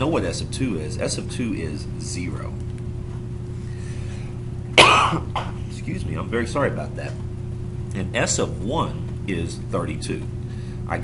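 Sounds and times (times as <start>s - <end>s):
steady low hum: 0.0s - 11.0s
man coughing: 4.8s - 5.7s.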